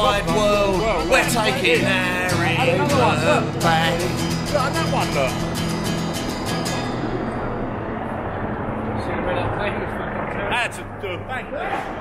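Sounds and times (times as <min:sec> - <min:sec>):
man's voice: 0:00.0 - 0:05.4
traffic rumble: 0:00.0 - 0:12.0.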